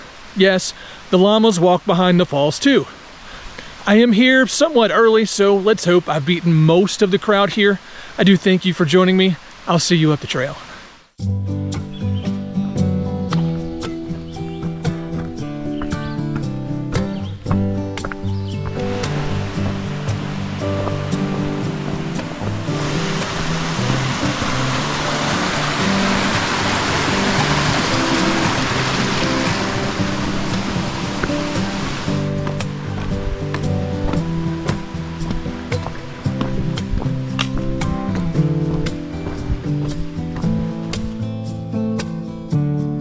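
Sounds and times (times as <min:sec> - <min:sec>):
flowing water rushing: 0:00.0 - 0:11.1, 0:18.6 - 0:41.2
background music with steady beat: 0:11.2 - 0:43.0.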